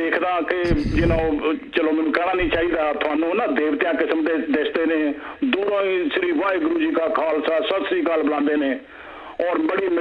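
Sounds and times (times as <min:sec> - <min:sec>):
person talking: 0:00.1 - 0:03.8.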